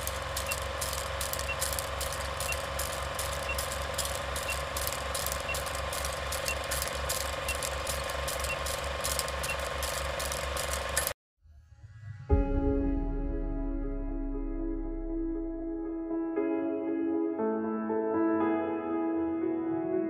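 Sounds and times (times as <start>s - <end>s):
steady hum: 0.0s - 11.1s
film projector clatter: 0.0s - 11.2s.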